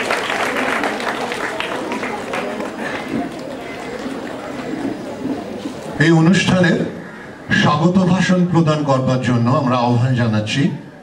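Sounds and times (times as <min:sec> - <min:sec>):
audience applause: 0:00.0 - 0:05.2
voices murmuring: 0:00.1 - 0:11.0.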